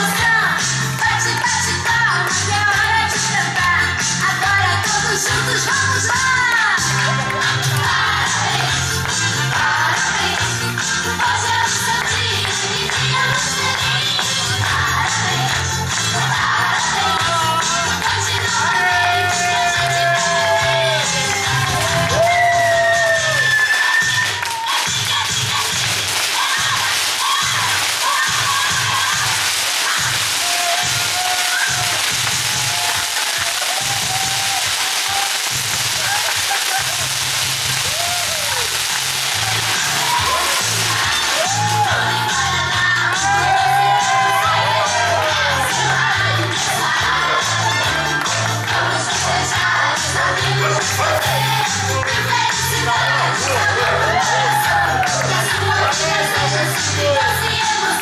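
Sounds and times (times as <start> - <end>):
firework fountain hissing: 0.0 - 58.0
music with bass beat and singing: 0.0 - 58.0
crowd cheering: 4.4 - 58.0.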